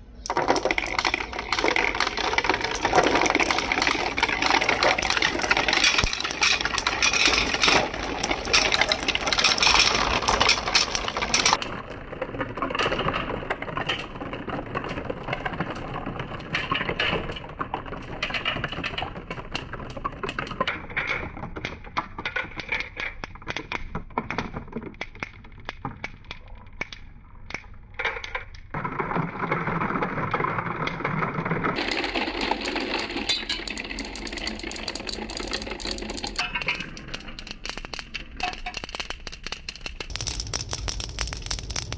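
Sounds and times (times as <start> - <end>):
marbles rolling and clattering: 0.0 - 41.9.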